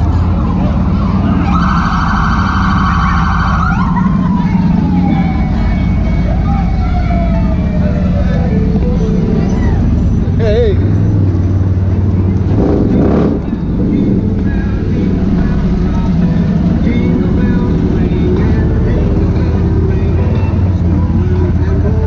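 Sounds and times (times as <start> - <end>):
vehicle engine droning: 0.0 - 22.0
siren winding down: 0.9 - 10.2.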